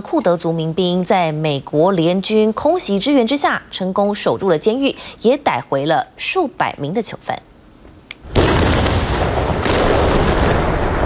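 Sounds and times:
sharp crack: 8.1s - 11.0s
loud explosion roar: 8.3s - 11.0s.

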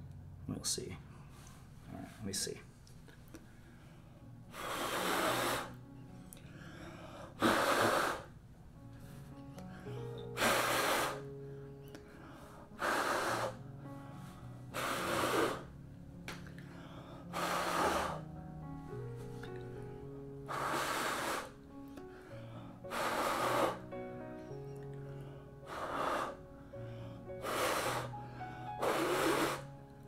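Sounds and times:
person blowing hard by mouth: 4.5s - 5.8s, 7.4s - 8.4s, 10.1s - 11.3s, 12.7s - 13.7s, 14.7s - 15.7s, 17.2s - 18.3s, 20.4s - 21.6s, 22.3s - 23.9s, 25.6s - 26.4s, 27.3s - 29.8s.

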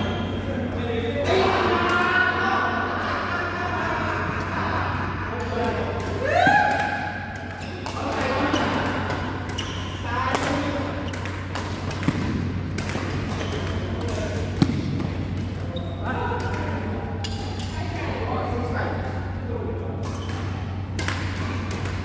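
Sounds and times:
steady low hum: 0.0s - 22.0s
racket hitting shuttlecock: 6.0s - 15.6s, 20.0s - 22.0s.

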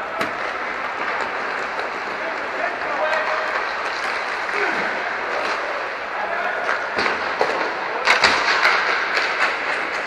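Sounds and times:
hockey sticks clacking: 0.0s - 10.0s
skate wheels rolling: 0.0s - 10.0s.

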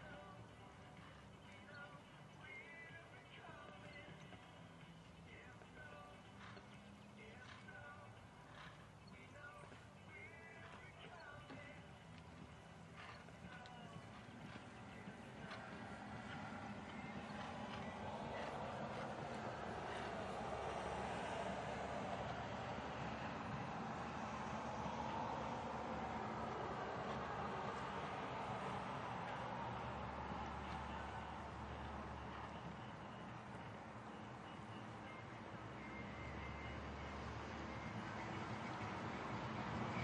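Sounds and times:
faint background music: 0.0s - 40.0s
horse hoofbeats on sand: 1.0s - 25.2s.

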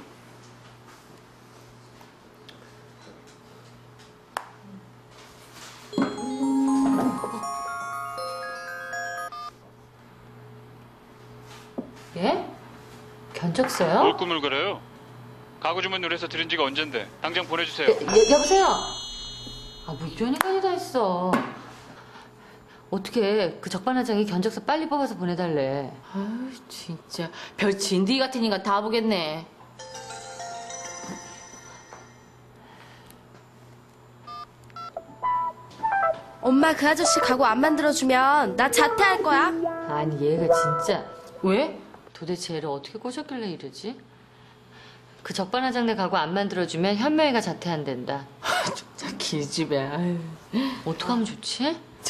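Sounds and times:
phone keypad beeps: 8.9s - 9.5s
mobile phone keypad beeps: 9.3s - 9.5s
low hum: 18.1s - 20.8s.

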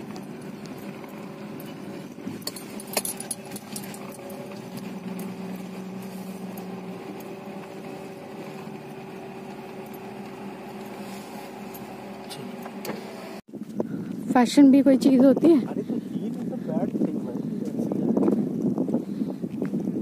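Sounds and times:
car engine and road hum: 0.0s - 15.8s.

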